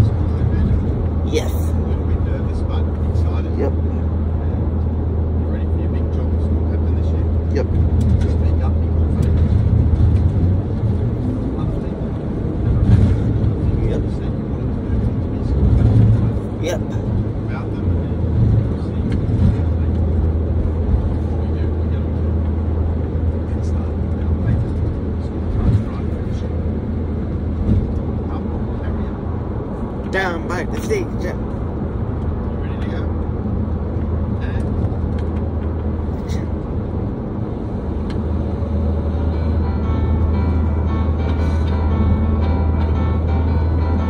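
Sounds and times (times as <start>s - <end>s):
car road and engine drone: 0.0s - 44.0s.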